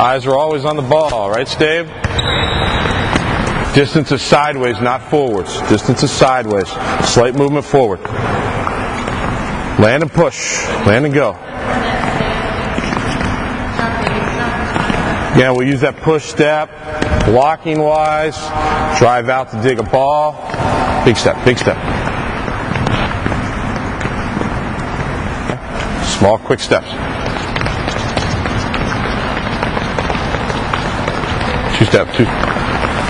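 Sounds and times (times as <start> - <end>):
shoes tapping on court floor: 0.0 - 9.8, 11.8 - 16.0, 16.7 - 18.8, 19.4 - 33.0
echoing gym footwork on hardwood: 19.5 - 33.0.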